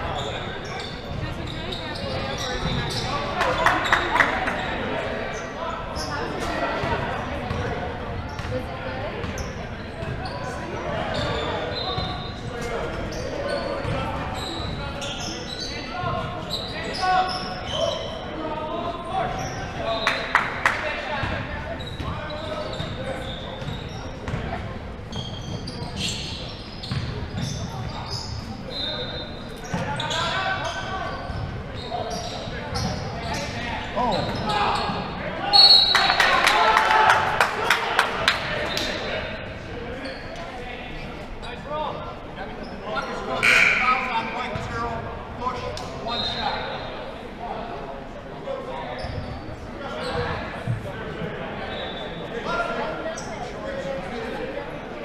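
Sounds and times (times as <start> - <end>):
indistinct voices echoing: 43.0 - 45.4.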